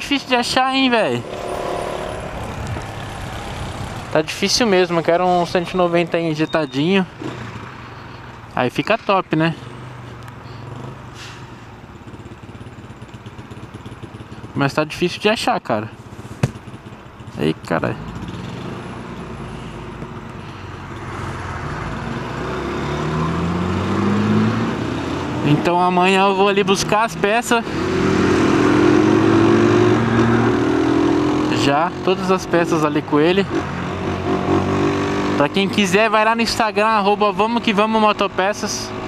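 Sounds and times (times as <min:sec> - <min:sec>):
road noise: 0:00.0 - 0:39.0
motorcycle engine running: 0:12.0 - 0:15.0, 0:15.9 - 0:20.2.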